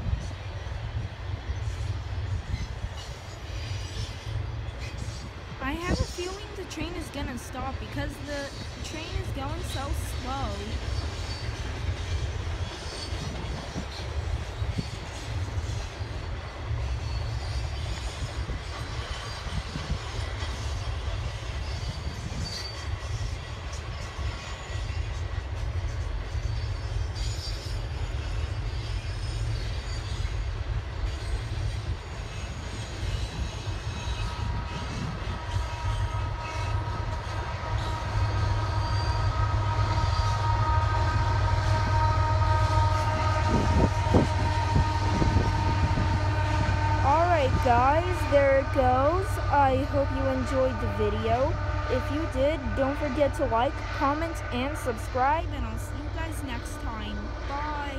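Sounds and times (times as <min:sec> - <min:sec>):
freight train rumbling on rails: 0:00.0 - 0:57.9.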